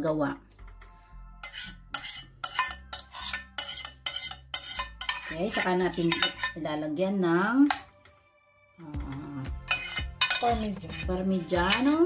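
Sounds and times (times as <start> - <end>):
utensil scraping a glass dish: 1.4 - 6.6, 9.6 - 12.0.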